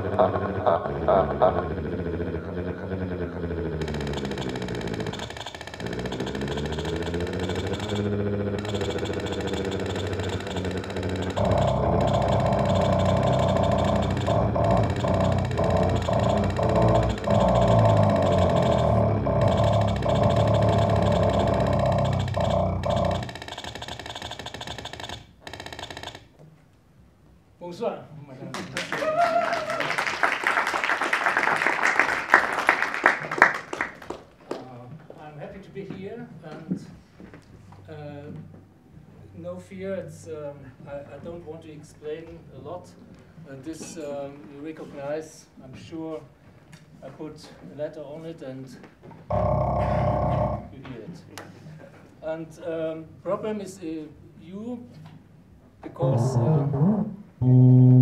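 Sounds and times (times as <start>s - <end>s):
dense electronic texture: 0.0s - 23.4s.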